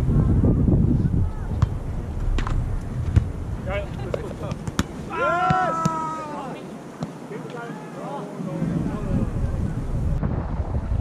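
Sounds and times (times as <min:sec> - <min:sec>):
wind buffeting microphone: 0:00.0 - 0:05.5, 0:08.2 - 0:11.0
hands striking volleyball: 0:04.1 - 0:06.0
person shouting: 0:05.1 - 0:06.6.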